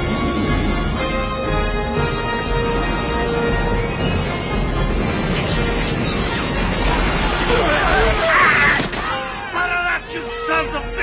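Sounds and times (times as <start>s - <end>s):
dramatic orchestral music: 0.0s - 11.0s.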